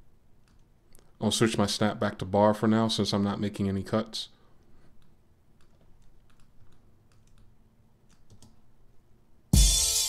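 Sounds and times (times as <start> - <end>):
keyboard and mouse clicking: 0.4 - 1.1, 5.0 - 8.6.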